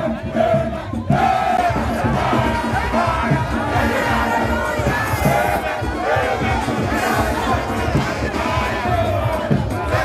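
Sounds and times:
crowd singing and shouting: 0.0s - 10.0s
music playing: 0.0s - 10.0s.

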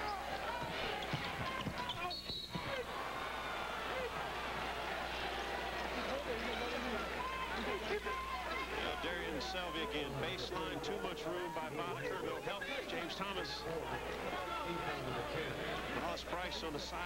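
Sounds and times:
sneakers squeaking: 0.0s - 2.9s
crowd din of many voices: 0.0s - 17.0s.

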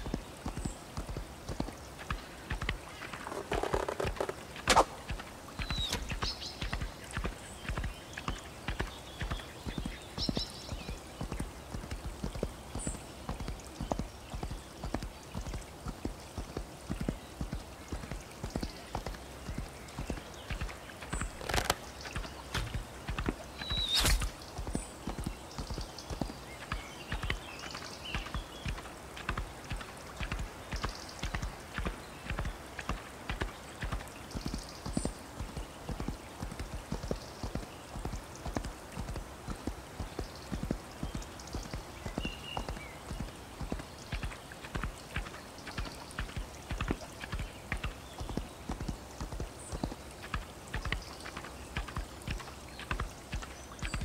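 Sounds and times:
horse hooves clip-clopping: 0.0s - 54.0s
sharp crack: 3.4s - 5.0s.

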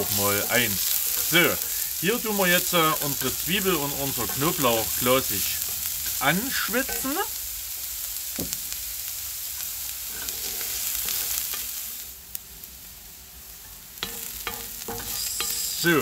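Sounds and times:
wooden spatula scraping pan: 0.0s - 7.2s, 10.1s - 11.7s
onion and garlic sizzling in oil: 0.0s - 16.0s.

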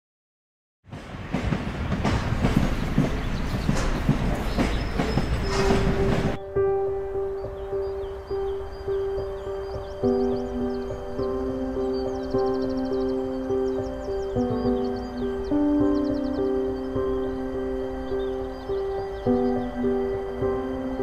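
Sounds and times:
train wheels clattering on rails: 0.9s - 6.4s
soft music of held notes: 5.5s - 21.0s.

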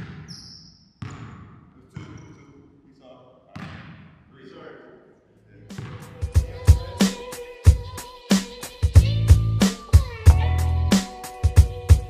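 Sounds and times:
basketball bouncing on court: 0.0s - 2.5s, 3.5s - 4.2s, 5.7s - 6.9s
short high shoe squeak: 0.2s - 1.0s.

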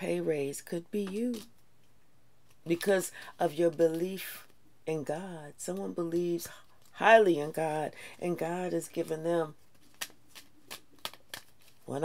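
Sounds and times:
cards shuffled by hand: 2.5s - 4.5s, 8.4s - 12.0s.

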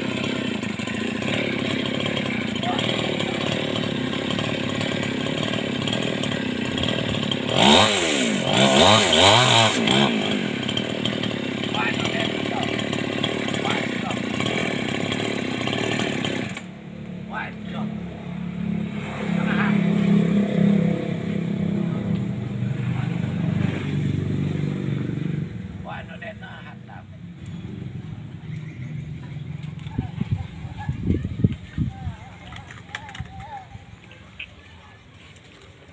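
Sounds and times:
chainsaw running: 0.0s - 17.4s.

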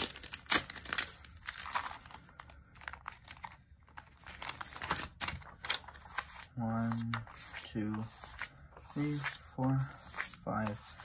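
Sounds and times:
plastic and paper crinkling: 0.0s - 11.0s.

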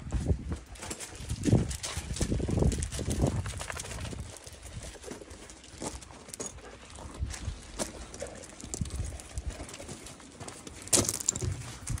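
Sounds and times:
dog paws crunching on gravel: 0.0s - 12.0s.

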